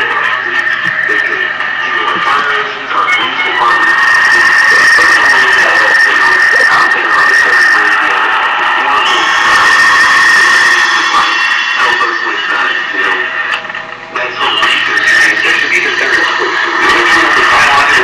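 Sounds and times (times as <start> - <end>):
harsh bright noise layer: 0.0 - 18.0
high-pitched tone: 0.0 - 18.0
garbled voice fragments: 1.1 - 8.2.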